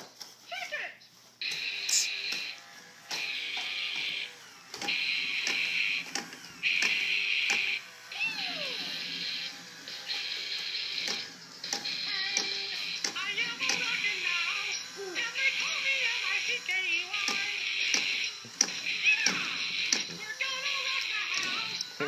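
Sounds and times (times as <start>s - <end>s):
toy speaker buzzy guitar blasts: 1.4s - 22.0s.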